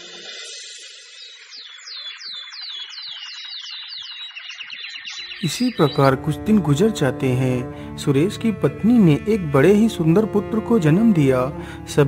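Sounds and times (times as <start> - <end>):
high falling bird whistles: 0.0 - 6.0
twittering bird chorus: 0.0 - 7.2
birds chirping: 0.0 - 12.0.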